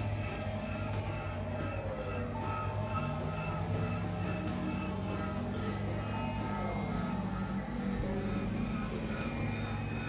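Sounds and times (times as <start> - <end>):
electronic drone music: 0.0 - 10.0.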